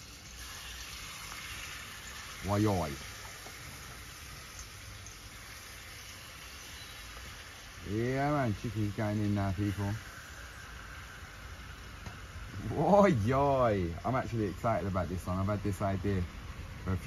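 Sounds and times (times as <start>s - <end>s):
oil sizzling in a pot: 0.0s - 17.0s.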